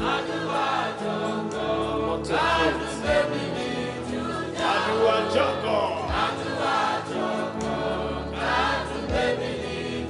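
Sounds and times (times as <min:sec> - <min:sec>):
gospel choir singing: 0:00.0 - 0:10.0
sustained instrumental backing: 0:00.0 - 0:10.0.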